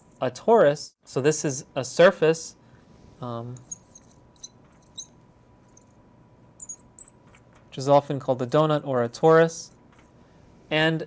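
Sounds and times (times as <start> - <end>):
marker squeaking on glass: 3.6 - 5.2, 6.6 - 7.6.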